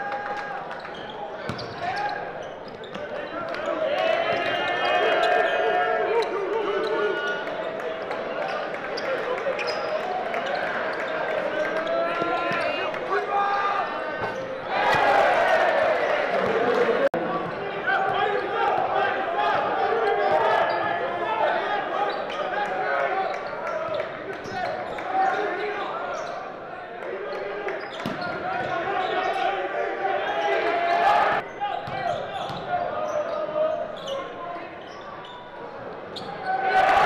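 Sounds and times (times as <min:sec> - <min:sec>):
crowd murmur in echoing hall: 0:15.6 - 0:37.0.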